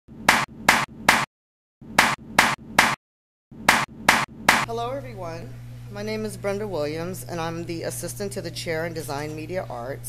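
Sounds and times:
hand claps: 0:00.3 - 0:01.3, 0:03.7 - 0:04.7.

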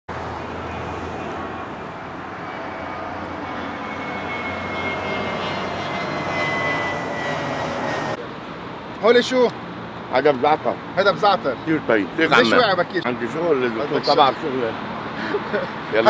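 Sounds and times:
jet engine roar overhead: 0:00.1 - 0:10.9
high turbine whine: 0:00.2 - 0:08.9.

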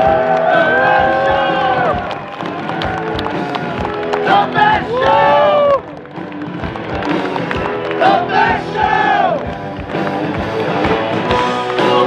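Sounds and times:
crowd noise: 0:00.0 - 0:12.0
drum beat: 0:00.0 - 0:12.0
live rock band playing: 0:00.0 - 0:12.0.

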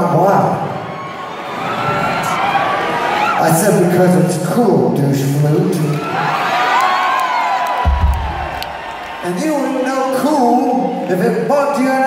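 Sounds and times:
audience cheering and shouting: 0:00.4 - 0:04.0, 0:05.8 - 0:12.0.

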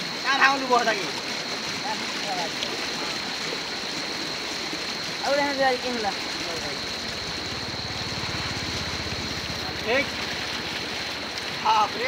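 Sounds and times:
floodwater rushing: 0:00.0 - 0:12.0
small engine pulsing: 0:05.2 - 0:11.4.

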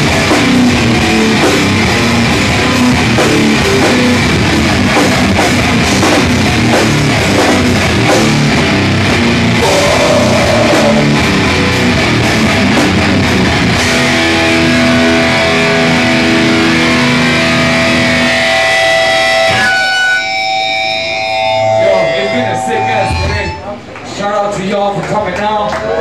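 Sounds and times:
heavy rock band playing: 0:00.0 - 0:23.7
guitar notes ringing: 0:08.6 - 0:23.8.

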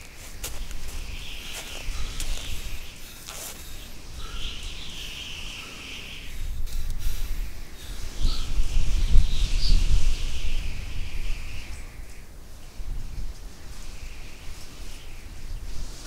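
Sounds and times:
wind gusting: 0:00.0 - 0:11.9
faint bird chirps: 0:00.0 - 0:12.2
steady high hiss: 0:00.0 - 0:12.7.

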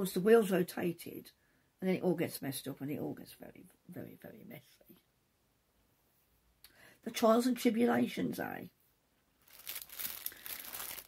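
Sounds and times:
packaging crinkling and rustling: 0:09.4 - 0:11.0.

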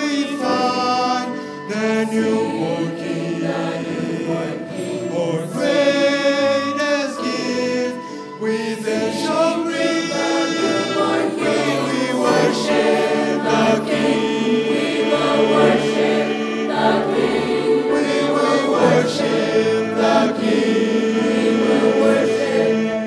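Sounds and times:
mixed choir singing: 0:00.0 - 0:23.0
string orchestra: 0:00.0 - 0:23.0.

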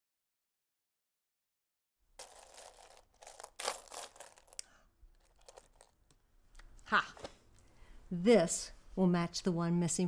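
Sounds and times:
buttons rattling in a box: 0:02.2 - 0:06.0.

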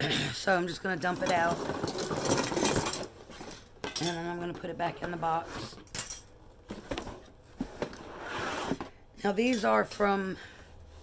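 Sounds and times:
metal kitchen utensils clattering: 0:01.0 - 0:04.6, 0:05.8 - 0:06.4.

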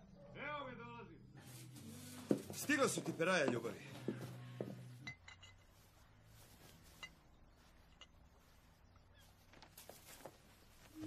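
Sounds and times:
light clinks: 0:05.0 - 0:05.9, 0:06.8 - 0:08.4.

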